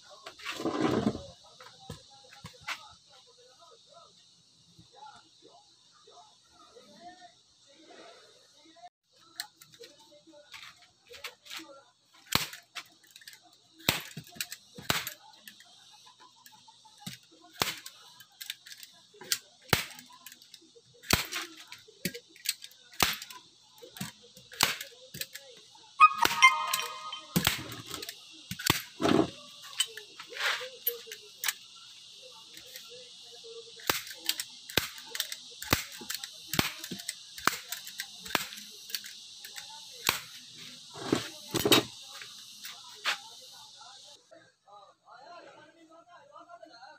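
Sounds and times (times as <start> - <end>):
staple gun snapping: 22.1 - 23.4, 33.8 - 40.3.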